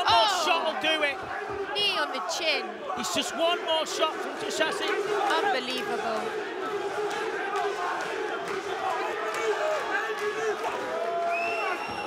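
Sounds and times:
crowd shouting and cheering: 0.0s - 12.0s.

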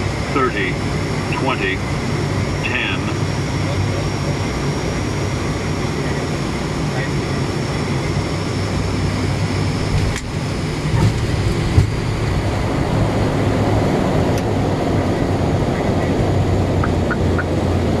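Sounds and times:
aircraft engines and wheels rumbling: 0.0s - 18.0s.

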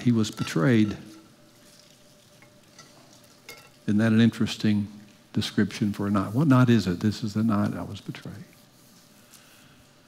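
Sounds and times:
man speaking: 0.0s - 1.2s, 3.9s - 8.6s.

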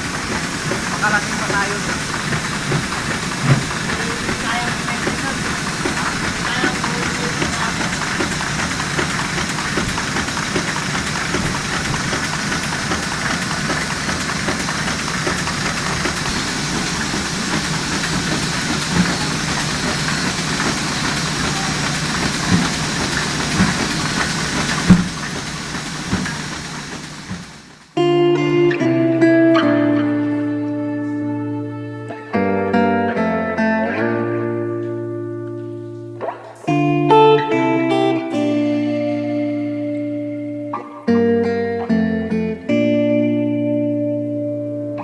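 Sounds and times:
sharp knocks: 0.0s - 27.6s
printing press running: 0.0s - 28.0s, 28.9s - 43.6s.

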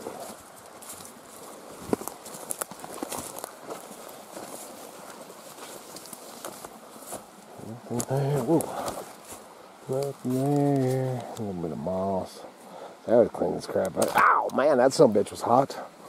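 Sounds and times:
footsteps through undergrowth: 0.0s - 11.5s
brush and leaves rustling: 0.0s - 16.0s.

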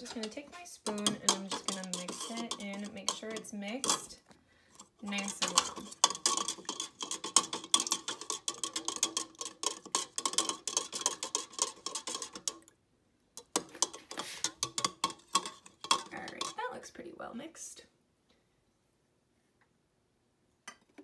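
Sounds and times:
spoon clinking in plastic cup: 0.0s - 4.1s, 5.1s - 12.6s.

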